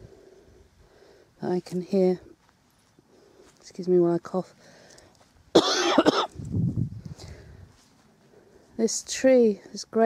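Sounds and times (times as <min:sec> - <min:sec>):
woman coughing: 0:05.5 - 0:06.4.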